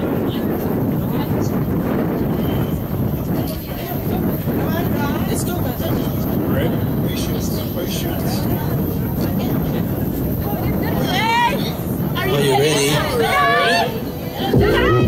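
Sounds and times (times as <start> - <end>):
indistinct voices: 0.0 - 15.0
low rumble: 14.0 - 15.0
voice with wavering pitch: 14.5 - 15.0.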